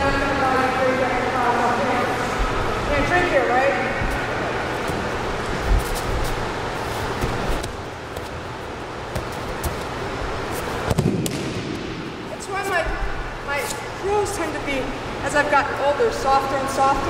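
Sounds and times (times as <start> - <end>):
bare feet moving on mats: 4.0 - 11.0.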